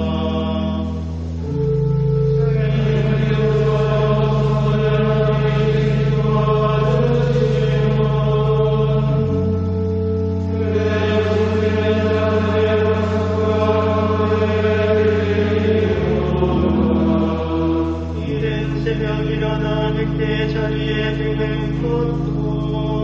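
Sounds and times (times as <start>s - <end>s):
choir of monks chanting: 0.0s - 23.0s
sustained organ: 0.0s - 23.0s.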